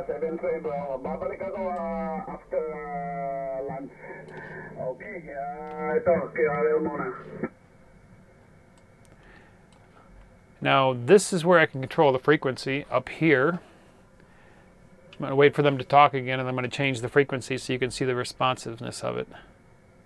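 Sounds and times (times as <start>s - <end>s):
narrow radio voice: 0.0s - 7.5s
faint receiver hiss: 0.0s - 14.4s, 15.0s - 19.4s.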